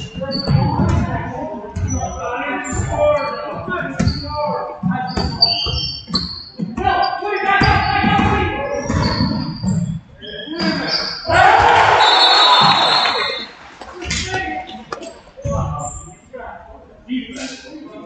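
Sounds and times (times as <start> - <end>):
sneakers squeaking: 0.0 - 16.2
basketball bouncing on wooden floor: 0.3 - 1.2, 7.6 - 10.0
players shouting: 10.7 - 13.7.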